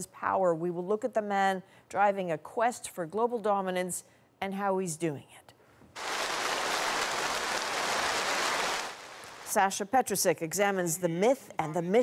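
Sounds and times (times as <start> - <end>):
crowd applause: 6.0 - 9.4.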